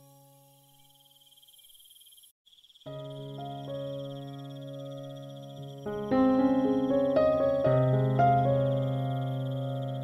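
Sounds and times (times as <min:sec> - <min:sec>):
crickets chirring: 0:00.0 - 0:10.0
piano chord: 0:02.9 - 0:10.0.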